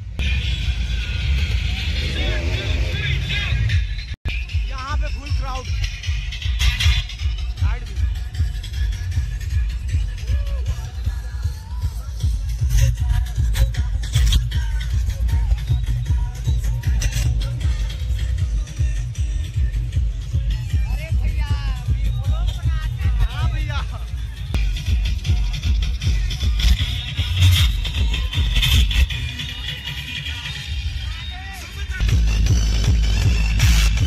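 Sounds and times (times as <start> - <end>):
electronic dance music heavy bass: 0.0 - 34.0.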